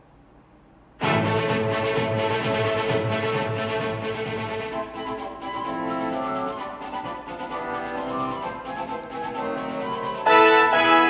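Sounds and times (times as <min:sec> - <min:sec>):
orchestral backing music: 0:01.0 - 0:11.0.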